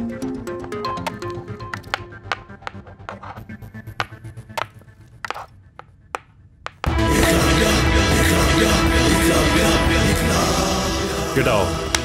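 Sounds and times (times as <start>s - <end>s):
loud music: 6.9s - 12.0s.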